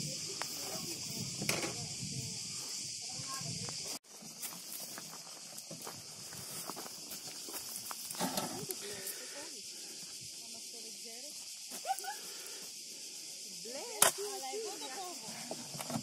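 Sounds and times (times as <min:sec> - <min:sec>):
cicadas buzzing: 0:00.0 - 0:16.0.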